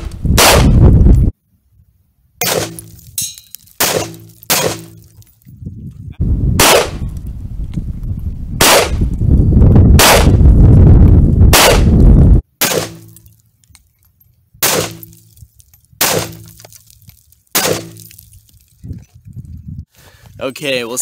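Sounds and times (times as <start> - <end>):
rifle shots: 0.0 - 0.8, 3.8 - 5.0, 6.6 - 7.0, 8.6 - 9.0, 10.0 - 10.4, 11.5 - 11.9, 12.6 - 13.2, 14.6 - 15.1, 16.0 - 16.5, 17.5 - 18.0.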